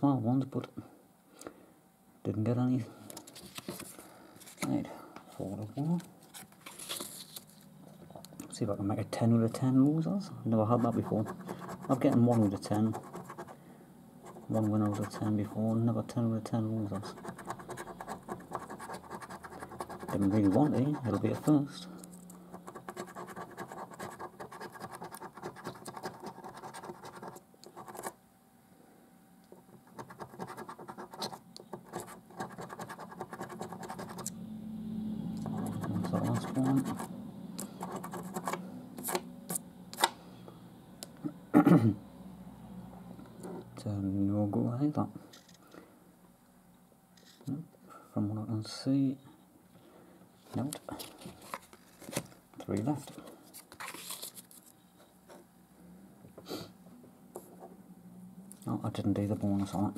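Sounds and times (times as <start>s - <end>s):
paper rustling: 3.1s - 4.8s, 5.8s - 7.7s, 50.4s - 52.4s, 53.0s - 55.4s
coin scraping scratch card: 10.8s - 13.6s, 16.9s - 21.5s, 22.5s - 28.2s, 29.8s - 34.3s, 35.4s - 39.2s.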